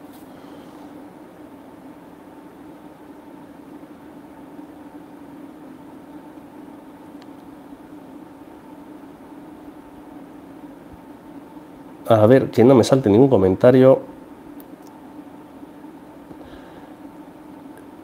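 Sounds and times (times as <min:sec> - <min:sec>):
low hum of running equipment: 0:00.0 - 0:18.0.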